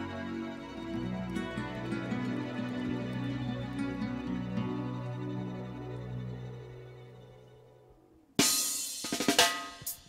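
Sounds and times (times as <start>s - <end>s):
cymbal crash: 8.4s - 10.0s
snare and drum hits: 8.4s - 10.0s.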